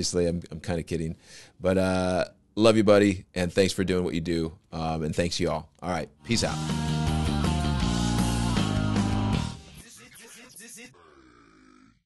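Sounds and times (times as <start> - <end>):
person grunting syllables: 10.8 - 12.0.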